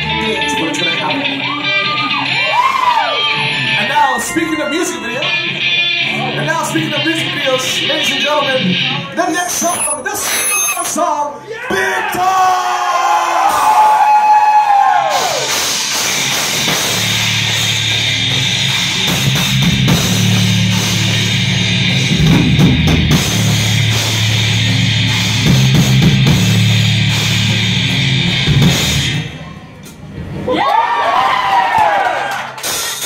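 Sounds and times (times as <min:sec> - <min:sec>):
electric guitar: 0:00.0 - 0:09.2
bass guitar: 0:00.0 - 0:10.8, 0:14.8 - 0:30.5
live rock band playing: 0:00.0 - 0:10.9, 0:15.4 - 0:29.5
drums: 0:00.0 - 0:33.0.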